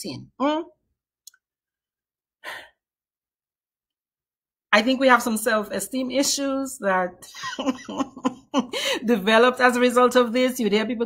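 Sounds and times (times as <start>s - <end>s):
person breathing: 2.4s - 2.8s, 8.7s - 9.0s.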